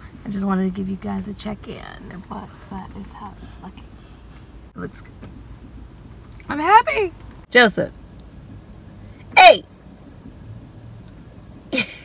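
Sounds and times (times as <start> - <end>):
car cabin hum: 0.0 - 12.0
woman laughing: 11.8 - 12.0.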